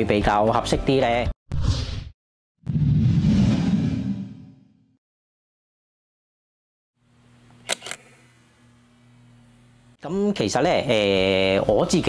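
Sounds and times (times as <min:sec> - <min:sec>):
camera shutter clicks: 0:07.6 - 0:08.2.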